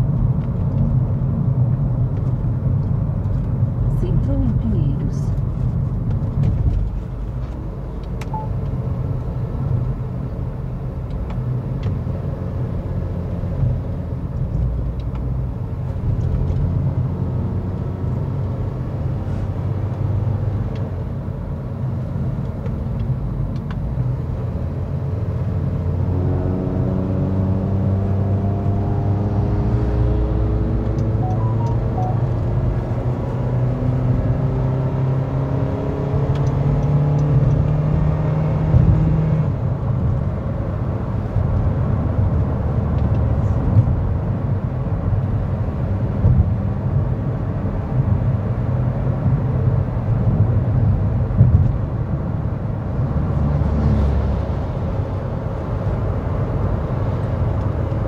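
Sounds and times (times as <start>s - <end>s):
road and engine rumble: 0.0s - 58.0s
engine note rising in pitch: 26.2s - 34.8s.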